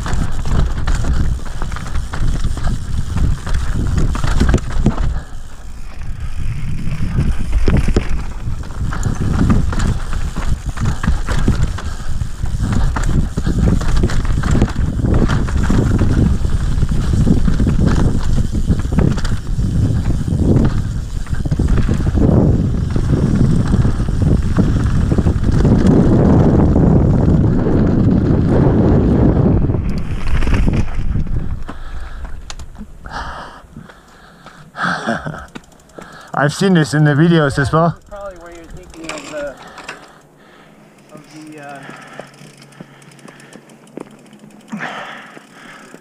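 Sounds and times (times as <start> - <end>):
wind rumble on microphone: 0.0 - 33.9
bike knocking and rattling: 0.0 - 46.0
tyres over dirt and stones: 0.0 - 46.0.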